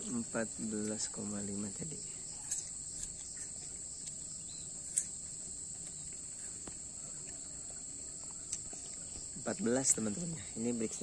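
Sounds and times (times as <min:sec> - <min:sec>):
insects trilling: 0:00.0 - 0:11.0.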